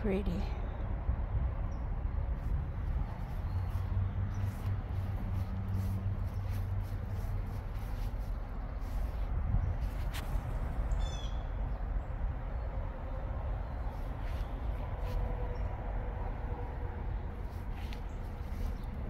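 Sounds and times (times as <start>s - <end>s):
outdoor background rumble: 0.0s - 19.0s.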